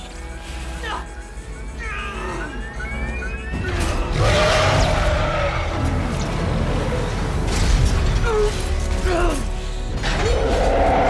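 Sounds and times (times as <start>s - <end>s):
action film music: 0.0s - 11.0s.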